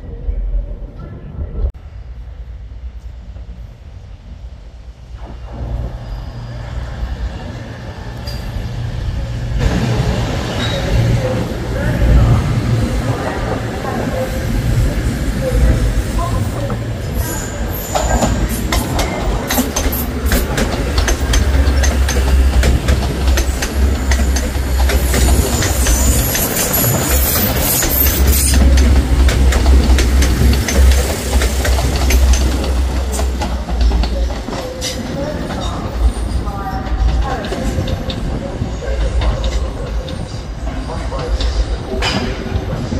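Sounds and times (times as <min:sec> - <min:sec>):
high wheel squeal: 0:17.0 - 0:19.5, 0:23.5 - 0:28.7
wheels clicking over rail joints: 0:17.8 - 0:42.9.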